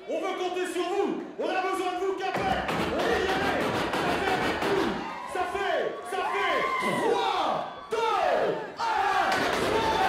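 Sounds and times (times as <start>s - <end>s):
man whooping over loudspeaker: 4.9s - 8.8s.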